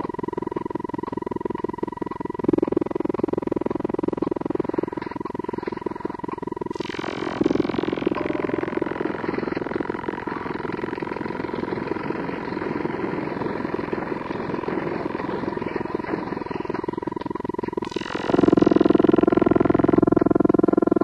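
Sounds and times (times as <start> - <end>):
rapidly pulsing rough noise: 0.0 - 21.0
steady high tone: 0.0 - 21.0
synthesizer drone: 0.0 - 21.0.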